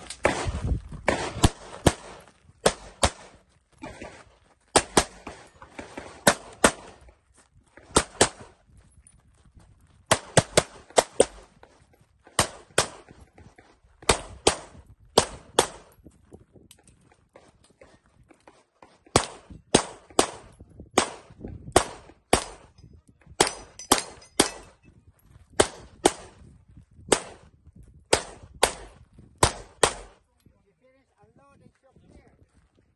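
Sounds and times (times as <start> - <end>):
pistol firing rapid shots: 0.0 - 3.4, 4.7 - 7.0, 7.8 - 8.5, 10.1 - 11.5, 12.3 - 13.1, 14.0 - 15.9, 19.1 - 22.7, 23.4 - 24.7, 25.6 - 26.4, 27.1 - 27.4, 28.1 - 30.2.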